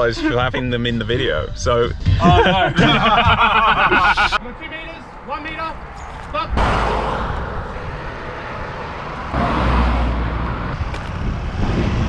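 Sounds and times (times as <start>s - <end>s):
road traffic noise: 0.0s - 12.0s
wind rumbling on microphone: 5.8s - 9.4s, 10.0s - 12.0s.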